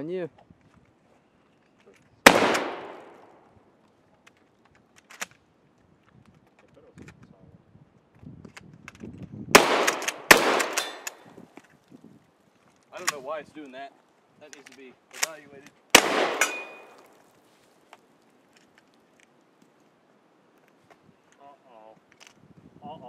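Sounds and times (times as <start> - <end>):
shotgun firing: 2.2 - 3.4, 9.5 - 11.2, 15.9 - 17.1
shotgun action clicking and clatter: 4.2 - 5.4, 8.5 - 11.7, 13.0 - 13.2, 14.5 - 17.2.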